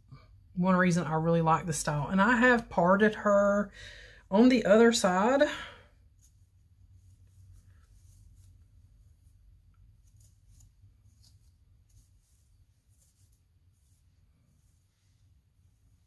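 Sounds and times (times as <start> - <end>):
low steady hum: 0.0 - 16.0
comb scratching through hair: 6.0 - 16.0.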